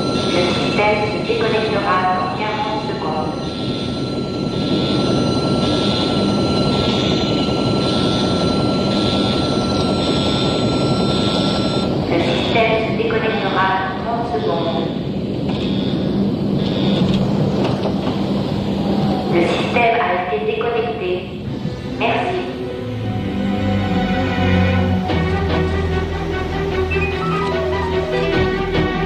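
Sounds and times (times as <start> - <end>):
warning alarm beeping: 0.0 - 17.6, 25.0 - 28.9
loud machine rumble: 0.0 - 20.2, 21.3 - 29.0
steady high tone: 0.0 - 29.0.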